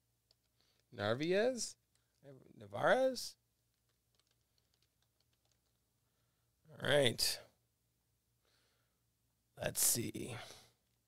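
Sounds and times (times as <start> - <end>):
computer keyboard typing: 3.7 - 5.8.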